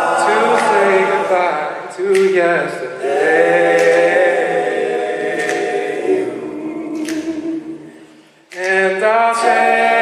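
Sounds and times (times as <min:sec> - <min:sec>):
male group singing harmony: 0:00.0 - 0:10.0.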